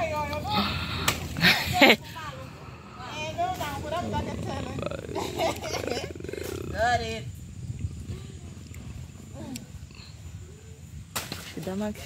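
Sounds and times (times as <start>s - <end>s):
women laughing: 1.4s - 2.3s, 4.1s - 6.7s.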